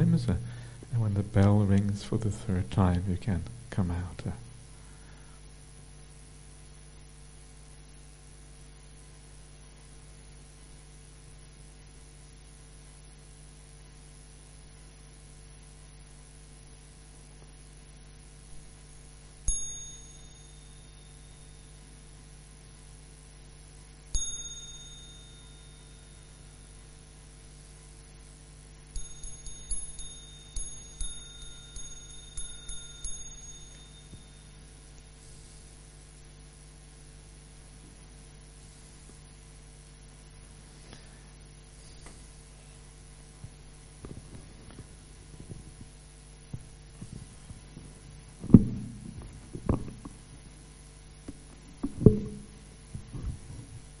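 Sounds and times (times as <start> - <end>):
meditation bell ringing: 19.4 - 22.0, 24.1 - 27.0, 28.9 - 35.2
microphone handling knock: 46.5 - 50.2, 51.8 - 53.8.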